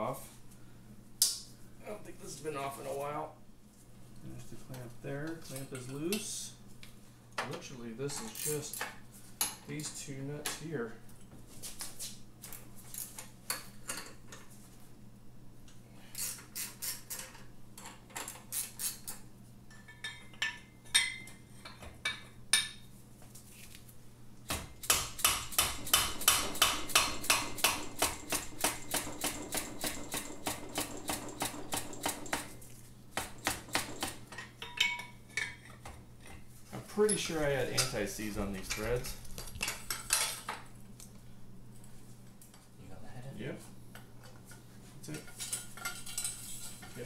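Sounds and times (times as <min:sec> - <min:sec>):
metal tools clinking: 0:08.1 - 0:08.8
hammer tapping on spanner: 0:24.8 - 0:32.5
metal clinking and scraping: 0:45.3 - 0:47.0.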